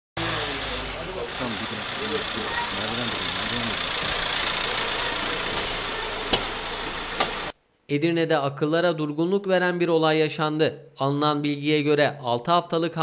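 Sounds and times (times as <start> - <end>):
people talking: 0.2 - 6.2
engine idling: 0.2 - 7.5.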